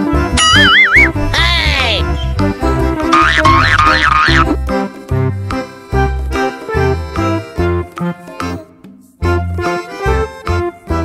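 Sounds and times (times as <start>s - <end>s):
cheerful children's music: 0.0s - 11.0s
cartoon warbling sound effect: 0.4s - 2.1s, 3.1s - 4.6s.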